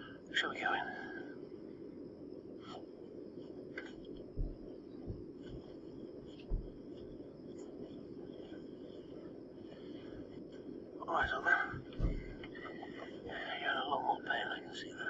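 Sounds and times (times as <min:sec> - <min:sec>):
steady low hum: 0:00.0 - 0:15.0
soft footsteps: 0:03.4 - 0:13.4.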